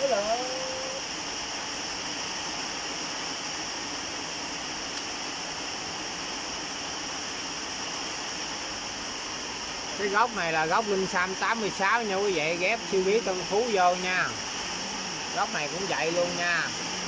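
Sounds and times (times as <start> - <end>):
heavy rain falling: 0.0 - 17.0.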